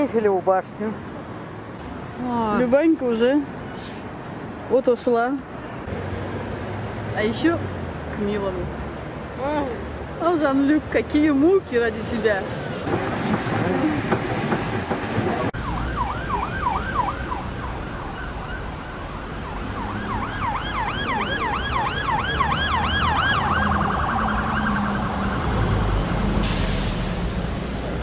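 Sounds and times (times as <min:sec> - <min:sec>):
low traffic rumble: 0:00.0 - 0:28.0
emergency siren yelping: 0:15.6 - 0:26.0.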